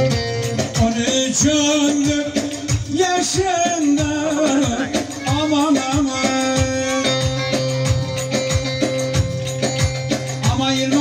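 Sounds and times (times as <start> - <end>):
man singing: 0.0 - 8.0, 10.4 - 11.0
drum beat of low thumps: 0.0 - 11.0
sustained melody line: 0.0 - 11.0.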